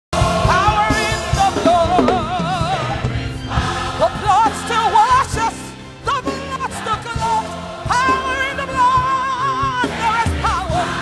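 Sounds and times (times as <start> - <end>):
drum and bass beat: 0.2 - 5.6
gospel choir singing: 0.2 - 11.0.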